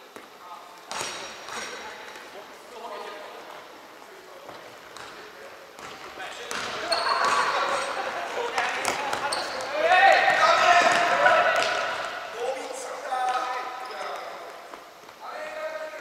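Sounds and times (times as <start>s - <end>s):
players shouting: 6.9s - 12.9s.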